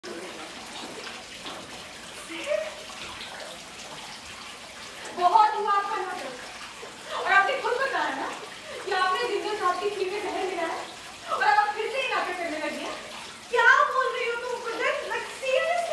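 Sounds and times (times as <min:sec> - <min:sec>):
woman speaking loudly: 0:11.3 - 0:15.9.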